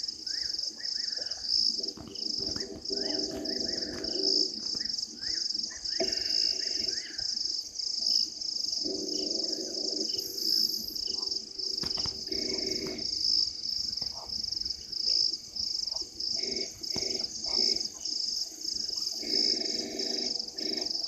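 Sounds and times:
crickets chirping: 0:00.0 - 0:21.0
night animal calls: 0:00.1 - 0:21.0.

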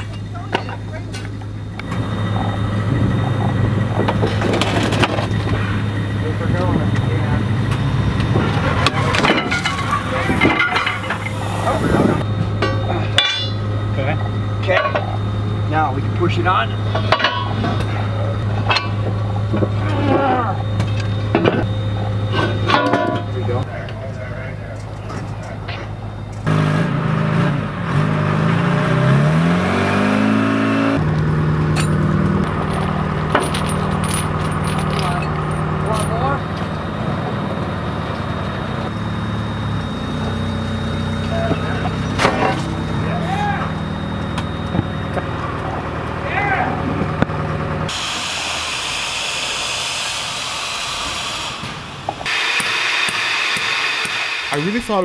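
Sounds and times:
forklift diesel engine revving: 0:01.5 - 0:23.7, 0:26.4 - 0:55.0
sharp metal clanks: 0:08.8 - 0:11.5, 0:12.6 - 0:13.7, 0:16.9 - 0:18.0, 0:18.6 - 0:19.2, 0:31.7 - 0:36.4.

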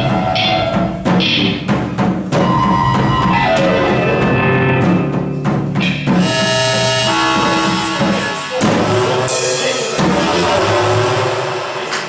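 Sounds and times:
rock band playing live: 0:00.0 - 0:11.8.

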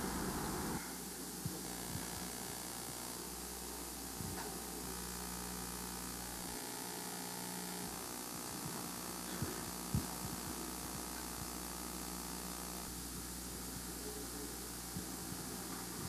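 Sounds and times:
low electrical hum and hiss: 0:00.0 - 0:16.0.

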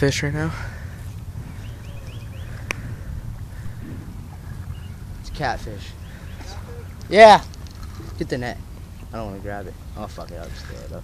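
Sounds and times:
wind rumble on microphone: 0:01.2 - 0:07.1.

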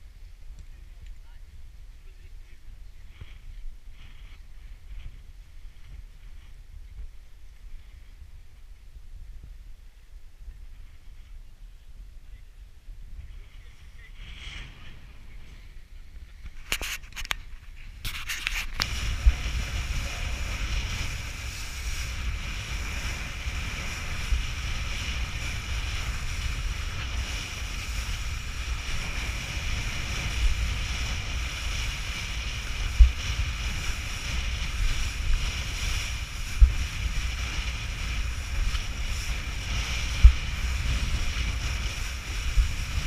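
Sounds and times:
wind buffeting microphone: 0:00.0 - 0:43.0
board skimming choppy water: 0:18.8 - 0:43.0.

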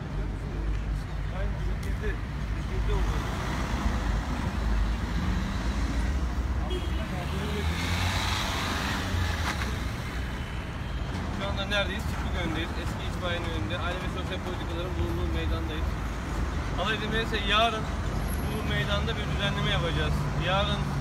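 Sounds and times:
traffic rumble and road noise: 0:00.0 - 0:21.0
rush of passing vehicle noise: 0:01.4 - 0:21.0.

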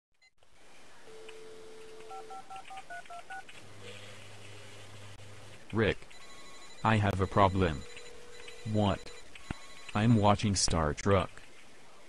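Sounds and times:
telephone dial tone: 0:01.1 - 0:03.4, 0:09.4 - 0:10.0
touch-tone key beeps: 0:06.1 - 0:10.0.

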